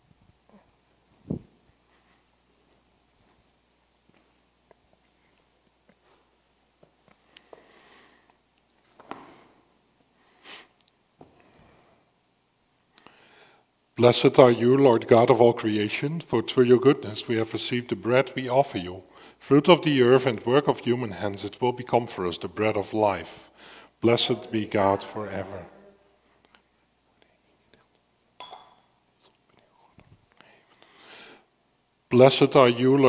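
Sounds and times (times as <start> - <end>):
nose sniff: 10.3 - 10.8.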